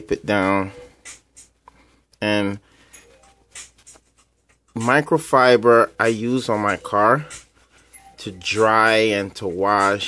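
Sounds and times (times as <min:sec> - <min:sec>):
person speaking: 0:00.0 - 0:01.3, 0:02.1 - 0:04.0, 0:04.7 - 0:10.0.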